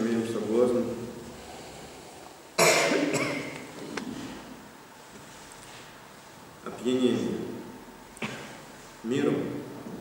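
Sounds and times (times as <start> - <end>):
person coughing loudly: 2.6 - 3.6.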